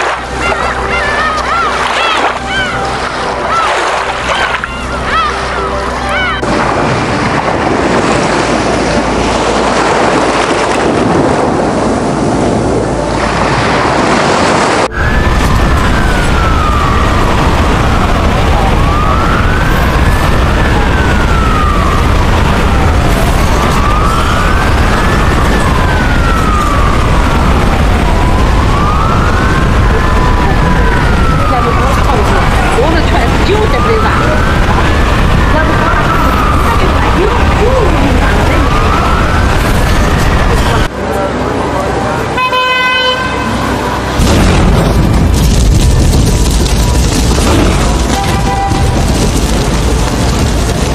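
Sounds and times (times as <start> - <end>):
wailing siren: 0.0 - 6.5, 14.8 - 40.9, 46.2 - 50.9
street traffic: 0.0 - 50.9
vehicle horn: 42.3 - 43.8, 48.2 - 49.0.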